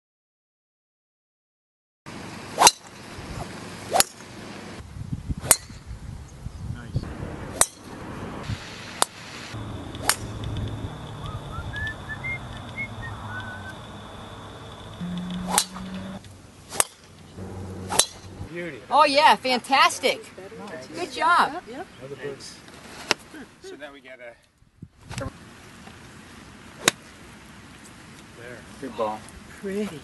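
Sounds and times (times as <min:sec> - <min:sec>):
golf drivers striking balls: 0:09.8 - 0:10.6, 0:15.0 - 0:18.5
faint bird chirps: 0:11.1 - 0:16.2.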